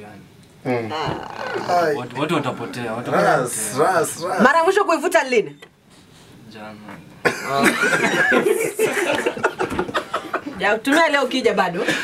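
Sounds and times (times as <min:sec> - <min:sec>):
people laughing raucously: 0:07.4 - 0:10.6.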